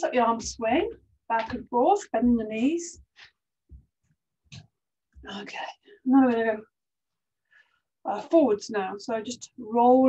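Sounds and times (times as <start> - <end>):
woman breathing: 7.4 - 8.0.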